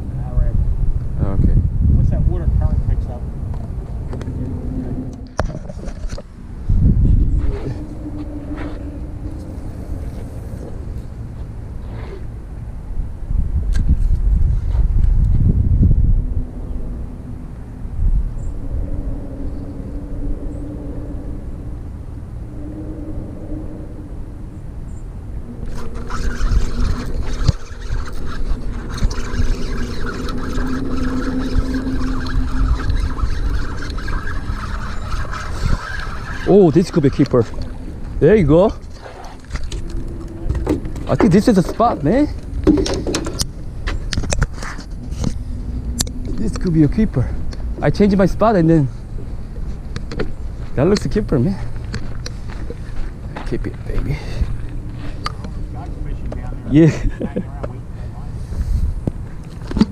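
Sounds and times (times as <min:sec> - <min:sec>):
low rumbling: 0:00.0 - 0:59.9
outdoor background noise: 0:00.0 - 0:59.9.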